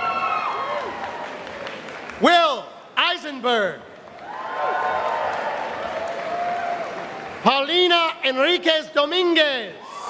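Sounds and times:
audience applause: 0.0s - 2.3s, 4.0s - 7.5s.

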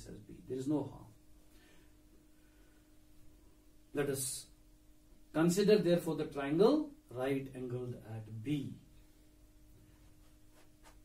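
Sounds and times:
faint steady hum: 0.0s - 11.0s
marker strokes on whiteboard: 9.8s - 11.0s.

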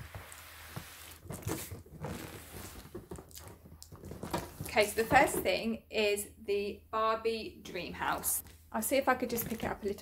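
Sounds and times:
cardboard box scraping: 0.0s - 3.2s.

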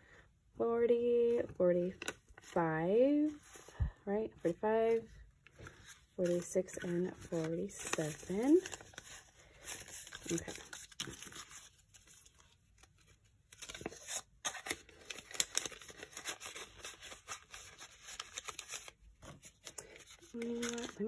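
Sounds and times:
paper banknotes rustling: 4.9s - 21.0s.

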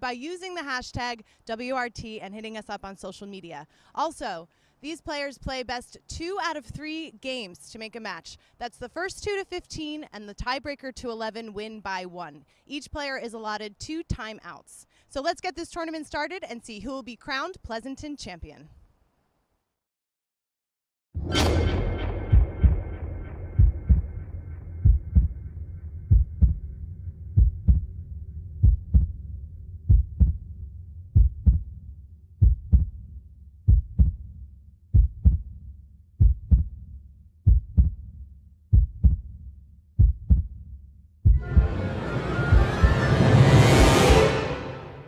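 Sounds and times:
heartbeat double thump: 22.1s - 24.2s, 24.8s - 25.5s, 26.1s - 26.7s, 27.3s - 28.0s, 28.6s - 29.2s, 29.8s - 30.5s, 31.1s - 31.8s, 32.4s - 33.1s, 33.7s - 35.6s, 36.2s - 36.8s, 37.5s - 38.1s, 38.7s - 39.4s, 40.0s - 40.6s, 41.2s - 43.1s
sustained music chord: 41.4s - 45.0s
swelling rise sound effect: 41.4s - 45.0s.

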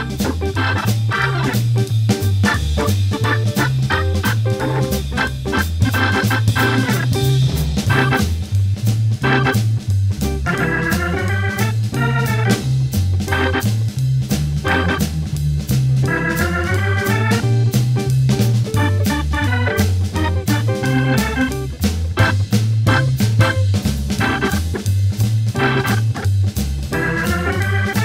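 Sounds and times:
drums keeping time: 0.0s - 28.0s
organ playing jazz blues: 0.0s - 28.0s
walking bass line: 0.0s - 28.0s.

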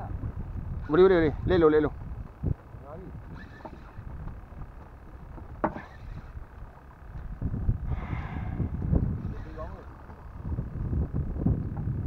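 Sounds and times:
wind rumbling on microphone: 0.0s - 12.0s
water sloshing around boat: 2.0s - 7.4s
rush of noise: 7.4s - 10.7s.

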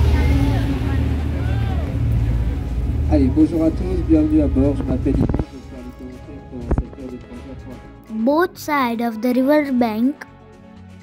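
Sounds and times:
boat engine rumbling: 0.0s - 7.0s
faint passenger voices: 0.0s - 7.6s.

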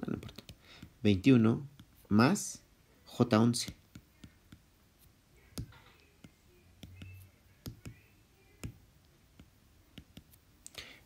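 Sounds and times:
stylus tapping on tablet screen: 0.2s - 1.0s, 3.6s - 10.4s.

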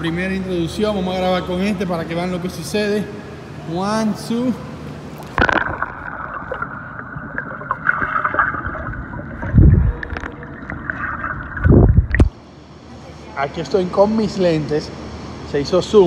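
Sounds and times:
deep whooshing water rumbles: 5.4s - 12.4s.

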